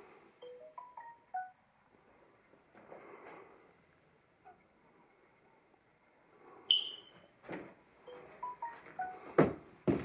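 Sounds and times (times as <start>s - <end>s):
high-pitched chirp: 6.7s - 7.2s.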